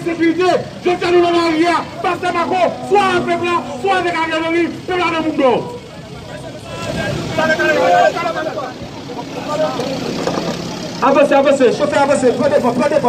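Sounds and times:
man's voice: 0.0 - 9.8, 11.0 - 13.0
street crowd voices: 0.0 - 13.0
vehicle engine running: 0.0 - 13.0.

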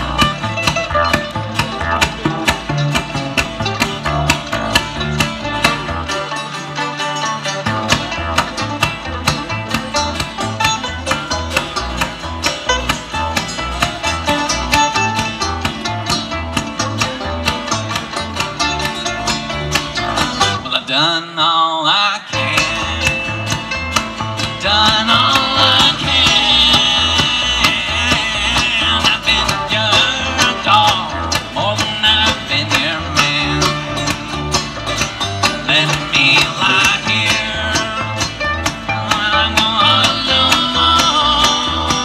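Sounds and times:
upright bass pulse: 0.0 - 20.7, 22.4 - 42.0
acoustic guitar picking: 0.0 - 21.3, 22.2 - 42.0
mandolin picking: 0.0 - 21.4, 22.2 - 42.0.

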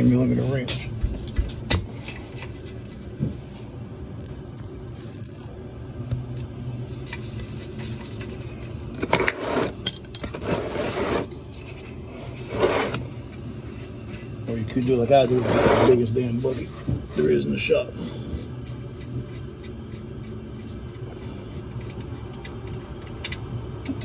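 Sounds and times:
steady low hum: 0.0 - 24.0
drain plug scraping and rubbing: 9.2 - 17.5.

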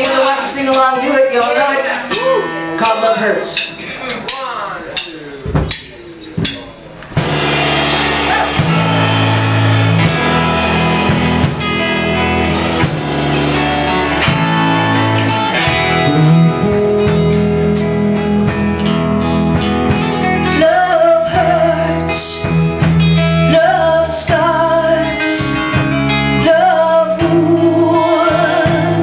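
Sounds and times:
acoustic band playing: 0.0 - 29.0.

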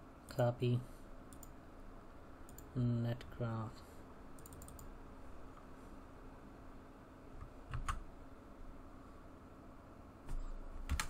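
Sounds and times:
faint steady hum: 0.0 - 11.0
keyboard and mouse clicks: 1.3 - 1.6, 4.4 - 4.9, 7.4 - 8.0, 10.3 - 11.0.

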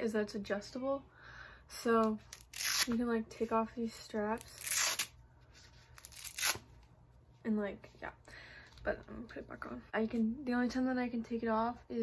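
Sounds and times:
hook-and-loop strap ripping: 2.0 - 3.0, 4.4 - 5.1, 6.0 - 6.7.

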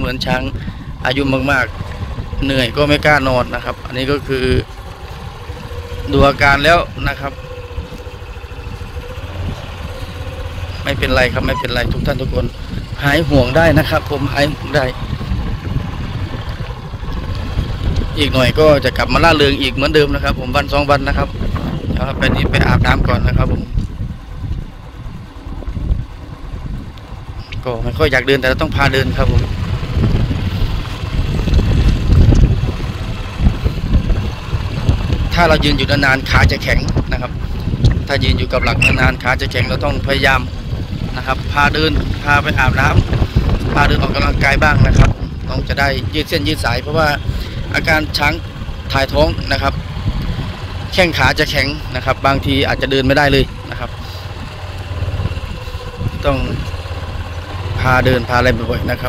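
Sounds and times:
motorcycle engine running: 0.0 - 59.0
wind buffeting microphone: 0.0 - 59.0.

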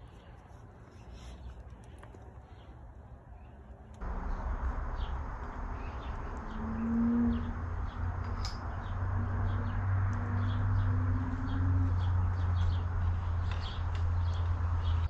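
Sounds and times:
small birds chirping: 0.0 - 15.0
steady low rumble: 3.9 - 15.0.

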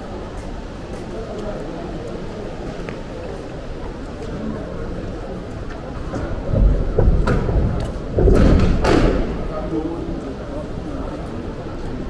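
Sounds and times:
low thuds and rumble: 6.2 - 9.5.

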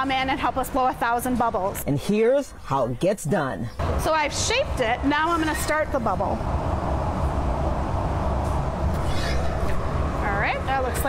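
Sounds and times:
gas furnace roaring: 3.8 - 11.0.

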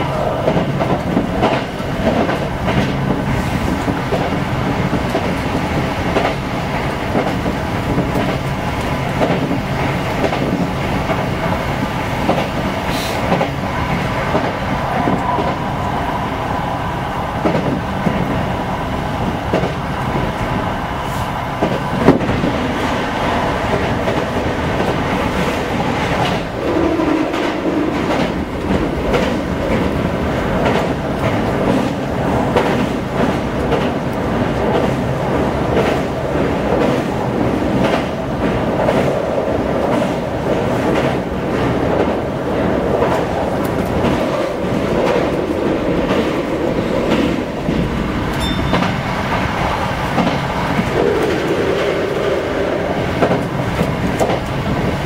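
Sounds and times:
train wheel-on-rail rumble: 0.0 - 55.0
clacks over rail joints: 0.4 - 11.2, 19.5 - 19.8, 23.6 - 52.4, 53.0 - 55.0.

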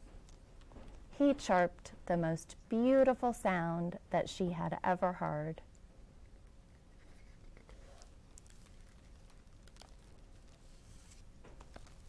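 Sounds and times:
paper rustling: 7.0 - 12.0.

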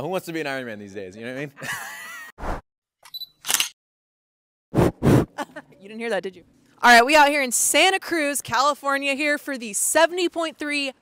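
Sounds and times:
puff of noise on microphone: 4.7 - 5.4.

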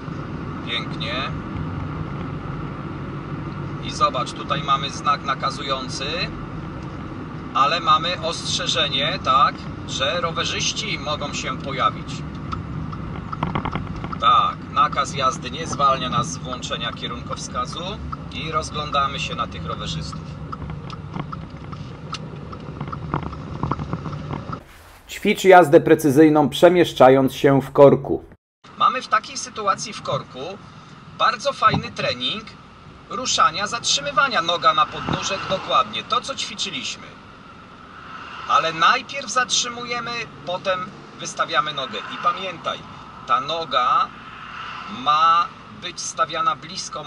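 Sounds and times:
car engine and road noise: 0.0 - 28.0, 28.7 - 47.0.

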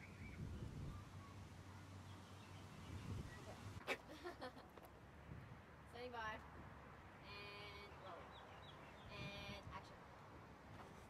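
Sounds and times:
small birds chirping: 0.0 - 3.8, 7.3 - 9.9.

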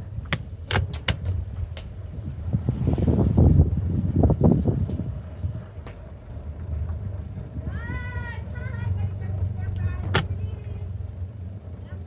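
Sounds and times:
wind rumble on microphone: 0.0 - 11.5.

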